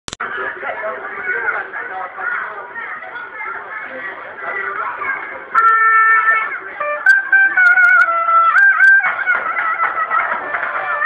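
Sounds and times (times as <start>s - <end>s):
crowd chatter: 0.1s - 11.0s
shrill shawm playing wavering melody: 5.5s - 11.0s.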